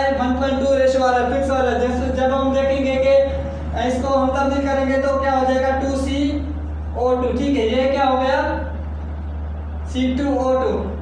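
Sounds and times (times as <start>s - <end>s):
man speaking: 0.0s - 8.7s
steady low hum: 0.0s - 11.0s.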